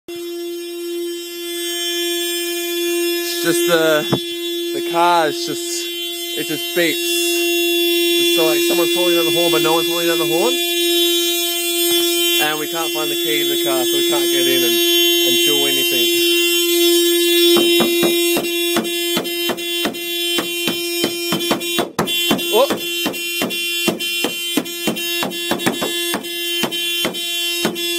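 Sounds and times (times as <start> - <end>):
car horn steady note: 0.1 - 27.9
quick series of knocks: 17.6 - 27.8.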